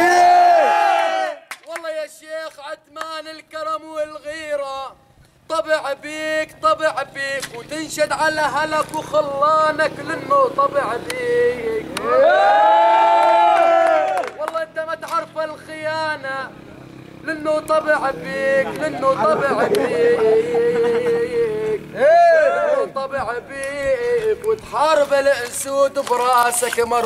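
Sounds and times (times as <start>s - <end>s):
man singing: 2.2s - 12.0s, 17.2s - 22.0s, 22.8s - 27.0s
men chanting together: 17.6s - 25.7s.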